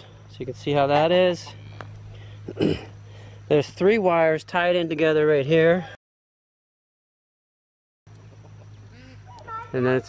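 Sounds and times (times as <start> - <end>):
steady low hum: 0.0 - 6.0, 8.1 - 10.0.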